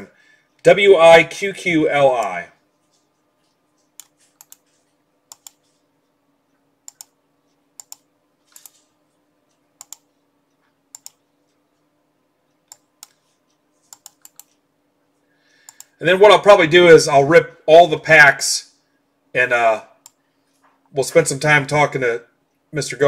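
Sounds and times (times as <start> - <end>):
faint steady hum: 0.0 - 23.0
computer mouse clicking: 2.9 - 5.8, 6.8 - 8.9, 9.5 - 11.9, 12.5 - 14.6, 15.6 - 15.9.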